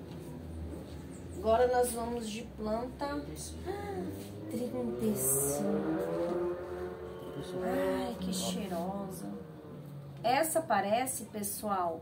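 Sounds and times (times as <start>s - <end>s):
woman speaking: 1.4s - 5.9s, 7.4s - 9.4s, 10.2s - 12.0s.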